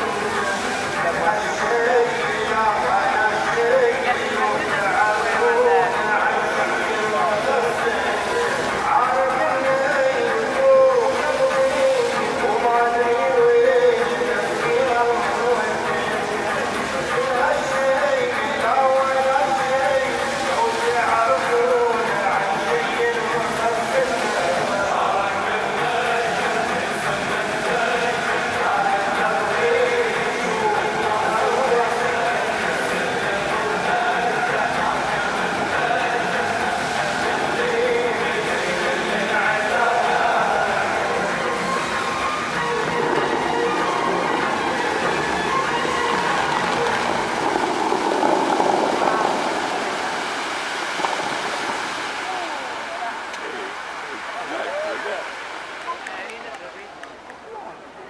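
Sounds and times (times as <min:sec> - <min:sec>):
fountain water rushing: 0:00.0 - 0:58.0
music over loudspeakers: 0:00.0 - 0:58.0.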